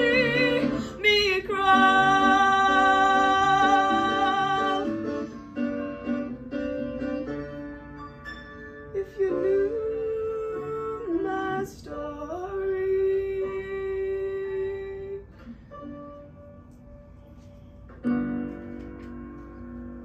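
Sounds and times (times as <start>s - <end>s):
woman singing: 0.0s - 5.1s, 9.0s - 15.3s.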